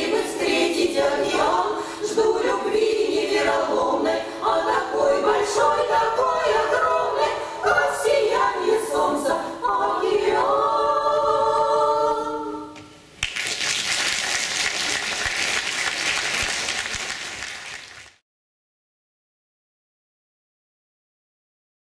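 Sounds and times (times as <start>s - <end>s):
women's vocal ensemble singing: 0.0s - 12.8s
audience applause: 13.2s - 18.2s.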